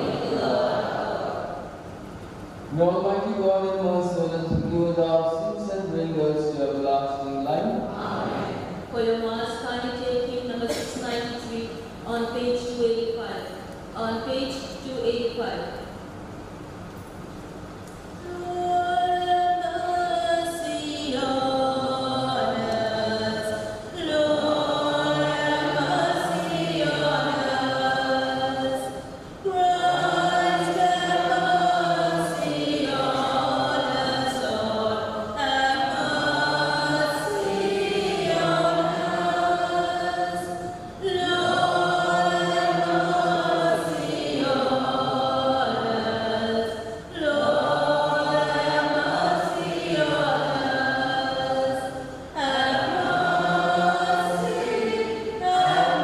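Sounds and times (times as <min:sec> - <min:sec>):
congregation singing a hymn: 0:00.0 - 0:01.8, 0:06.6 - 0:09.2, 0:18.3 - 0:56.0
woman singing through a microphone: 0:07.9 - 0:13.4, 0:18.2 - 0:56.0.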